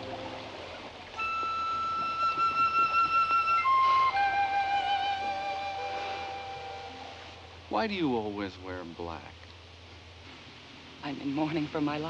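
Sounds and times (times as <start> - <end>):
solo flute high note: 1.2 - 7.5.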